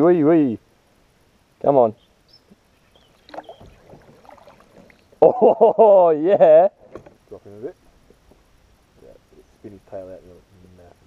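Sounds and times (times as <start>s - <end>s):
water splashing and knocking: 3.2s - 5.0s.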